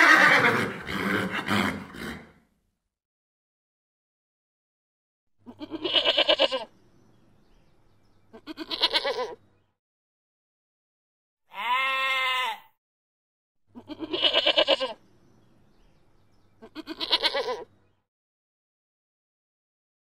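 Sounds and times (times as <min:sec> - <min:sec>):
goat bleating: 0:05.4 - 0:06.7, 0:08.3 - 0:09.4, 0:11.5 - 0:12.6, 0:13.8 - 0:15.0, 0:16.6 - 0:17.7.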